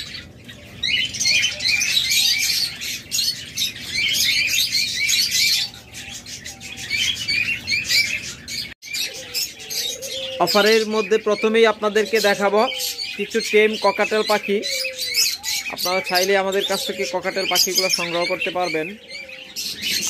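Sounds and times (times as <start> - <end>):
small birds chirping: 0.0 - 20.0.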